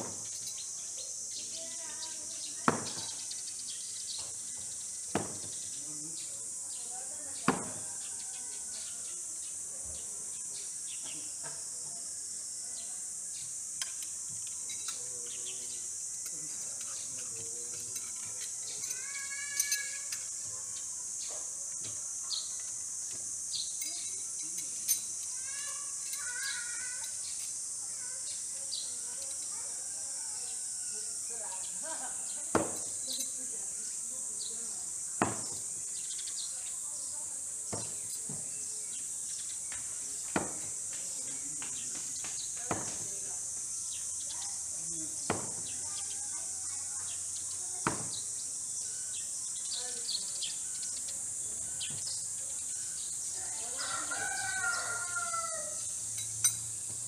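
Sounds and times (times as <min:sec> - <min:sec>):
high insect drone: 0:00.0 - 0:57.0
knives thunking into wood: 0:02.6 - 0:03.2, 0:05.1 - 0:05.6, 0:07.5 - 0:07.8, 0:32.5 - 0:33.0, 0:35.2 - 0:35.7, 0:40.3 - 0:40.8, 0:42.7 - 0:43.1, 0:45.3 - 0:45.7, 0:47.8 - 0:48.2.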